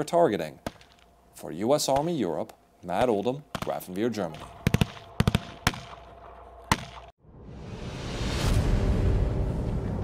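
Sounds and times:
rifle shots: 3.5s - 7.1s.

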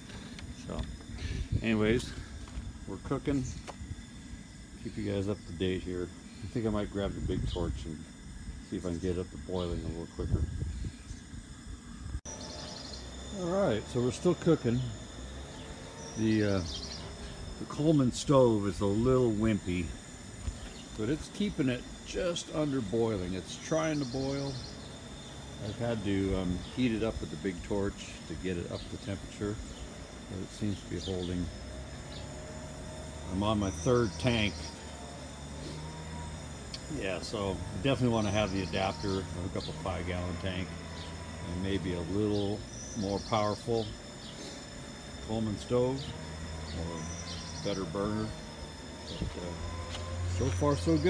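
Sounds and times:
camp stove burner hum: 0.0s - 51.0s
insect chirping: 0.0s - 51.0s
low steady rumble: 0.0s - 51.0s.

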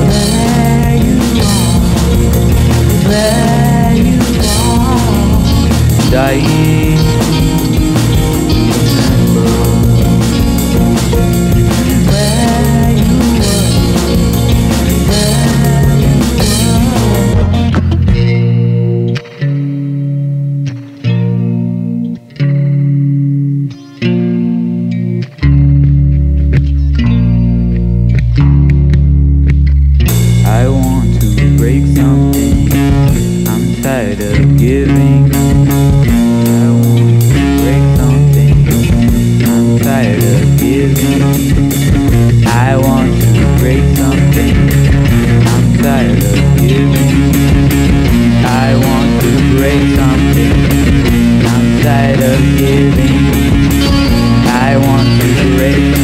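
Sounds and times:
distorted rock band: 0.0s - 56.0s
heavy bass: 0.0s - 56.0s
held guitar chords: 0.0s - 56.0s.

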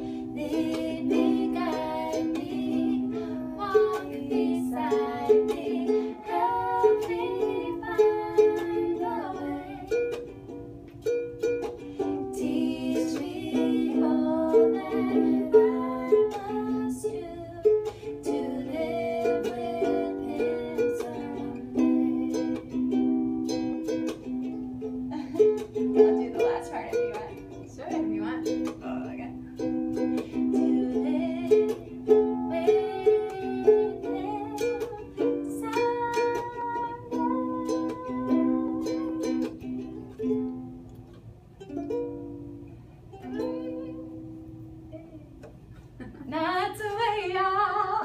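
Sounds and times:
ukulele strummed: 0.0s - 48.0s.

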